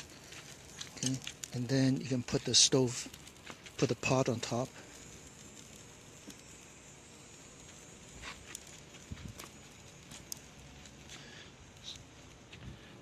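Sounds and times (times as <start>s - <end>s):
twig fire crackling: 0.0s - 13.0s.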